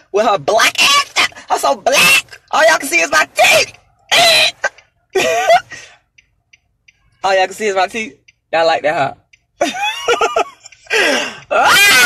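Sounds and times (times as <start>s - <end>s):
woman laughing: 4.6s - 5.7s, 9.6s - 10.9s.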